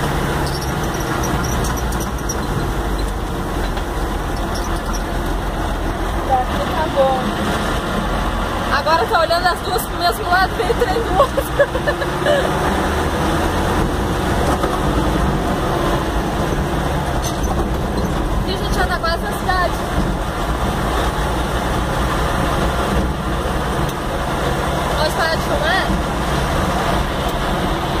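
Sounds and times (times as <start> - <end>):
vehicle engine and road noise: 0.0 - 28.0.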